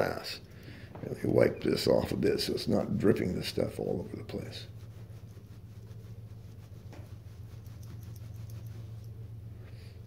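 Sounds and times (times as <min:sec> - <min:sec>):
steady low hum: 0:00.0 - 0:10.0
towel rubbing and patting: 0:03.0 - 0:09.4.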